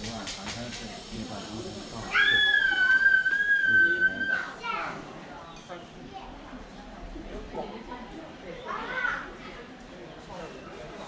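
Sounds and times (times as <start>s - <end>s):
child squealing: 2.1s - 4.6s.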